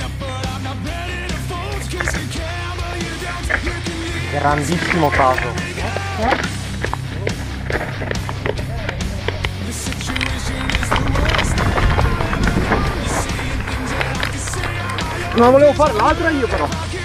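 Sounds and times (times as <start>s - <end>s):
music: 0.0s - 17.0s
bike frame and chain rattling: 1.0s - 17.0s
bike knocking on rocks: 1.2s - 17.0s.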